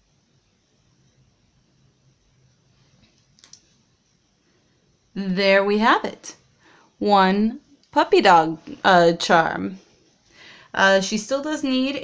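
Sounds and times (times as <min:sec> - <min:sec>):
faint low hum: 0:00.0 - 0:12.0
small click: 0:03.0 - 0:03.7.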